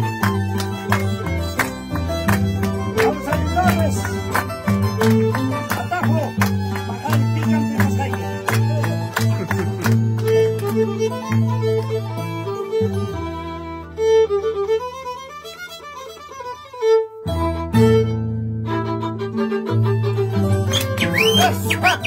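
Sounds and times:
violin melody: 0:00.0 - 0:22.0.

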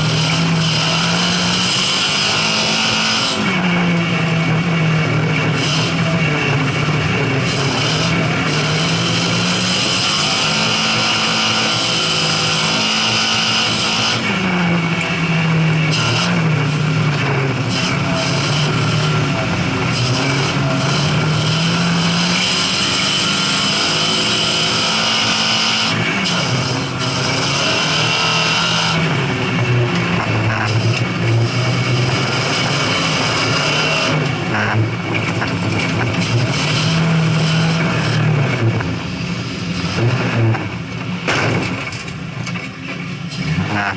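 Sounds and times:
rally car engine accelerating: 0:00.0 - 0:43.9.

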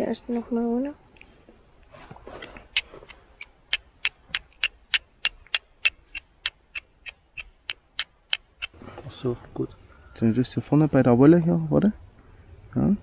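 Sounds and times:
fire striker scraping on flint: 0:01.8 - 0:08.8.

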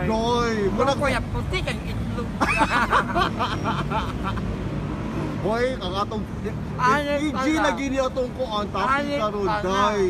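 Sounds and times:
road traffic rumble: 0:00.0 - 0:10.0
man talking: 0:05.4 - 0:10.0.

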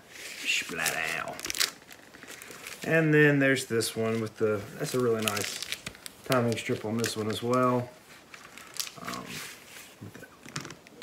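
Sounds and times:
faint crackles: 0:00.1 - 0:03.2, 0:03.8 - 0:11.0
plastic sleeve crinkling: 0:00.1 - 0:11.0.

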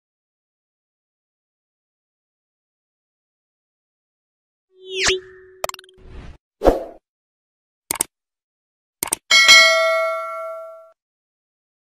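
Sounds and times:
mouse clicks: 0:07.9 - 0:08.1, 0:09.0 - 0:09.2
bright bell ding: 0:09.3 - 0:11.0.

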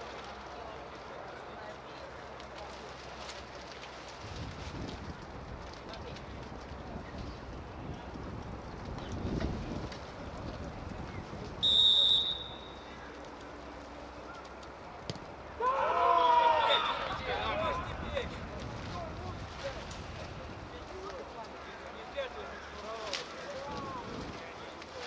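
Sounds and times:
low outdoor rumble: 0:00.0 - 0:25.0
referee's whistle blast: 0:11.6 - 0:12.8
voices shouting: 0:15.5 - 0:18.3.

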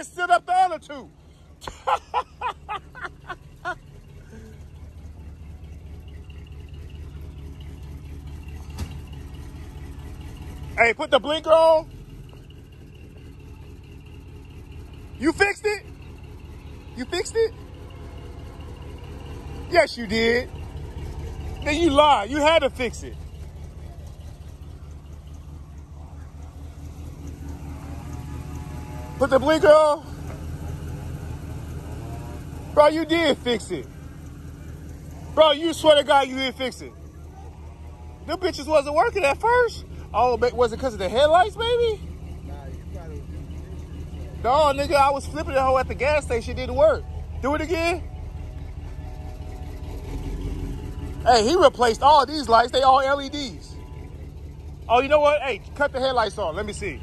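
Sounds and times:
car engine rumbling: 0:00.0 - 0:57.0.

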